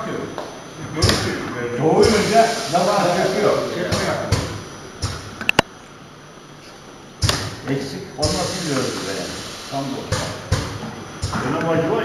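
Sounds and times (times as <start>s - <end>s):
machine knocks: 2.0s - 2.7s, 3.8s - 5.6s, 7.2s - 9.0s, 10.0s - 11.7s.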